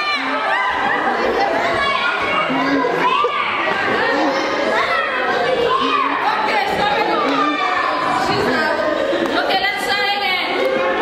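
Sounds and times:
children chattering and calling out: 0:00.0 - 0:11.0.

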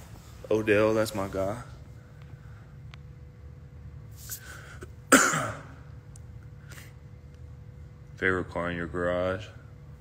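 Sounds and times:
man coughing: 0:04.7 - 0:05.9.

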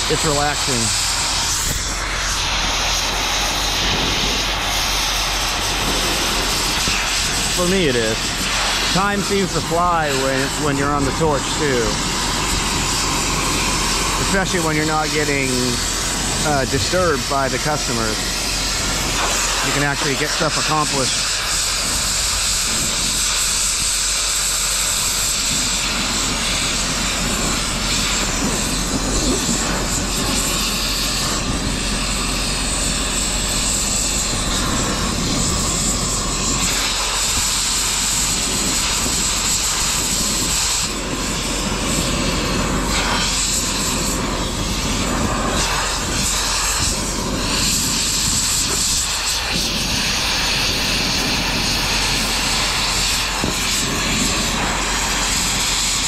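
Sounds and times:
cutting torch hissing roar: 0:00.0 - 0:56.0.

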